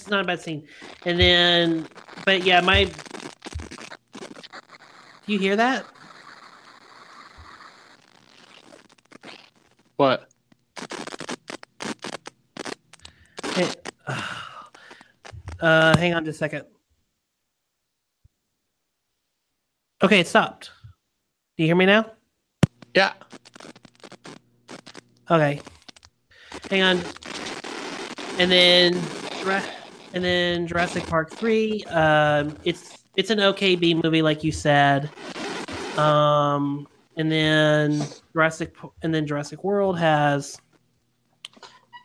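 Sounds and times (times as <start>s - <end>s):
scratchy crackling line noise: 0.0s - 16.6s, 22.6s - 42.0s.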